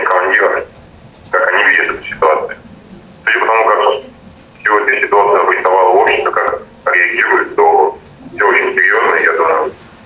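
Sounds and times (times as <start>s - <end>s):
person speaking over telephone: 0.0s - 0.7s, 1.3s - 9.8s.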